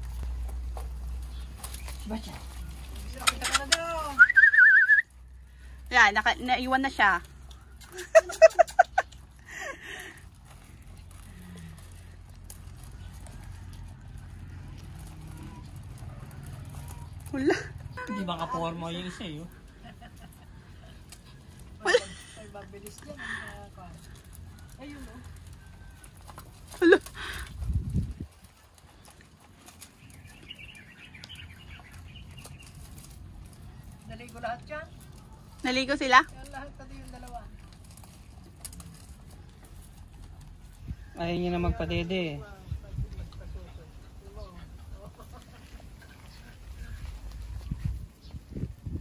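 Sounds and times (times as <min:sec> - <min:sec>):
puppies scuffling on grass: 0:00.0 - 0:49.0.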